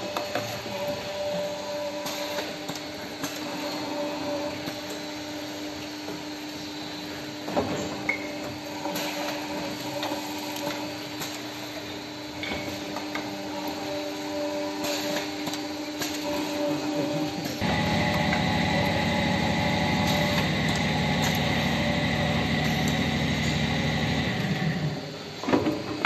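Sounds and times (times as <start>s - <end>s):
machine hum: 16.2s - 25.3s.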